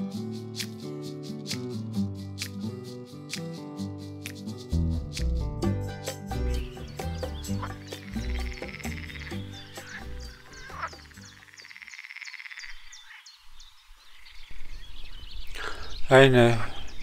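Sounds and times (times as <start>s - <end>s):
soft background music: 0.0s - 11.8s
small animals buzzing calls: 6.4s - 13.4s.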